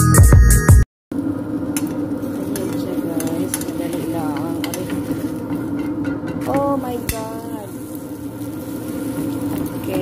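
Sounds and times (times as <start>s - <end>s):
flatbread sizzling in a pan: 1.2s - 6.1s, 6.7s - 10.0s.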